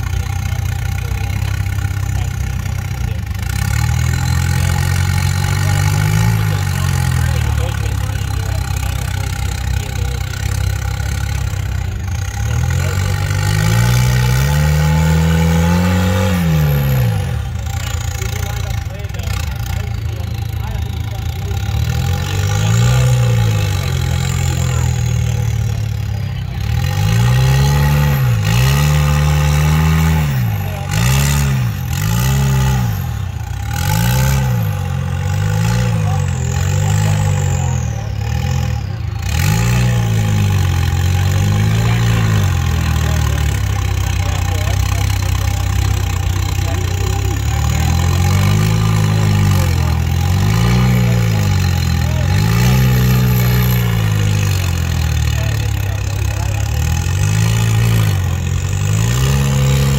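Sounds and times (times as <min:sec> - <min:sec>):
buggy engine revving: 0:00.0 - 0:59.9.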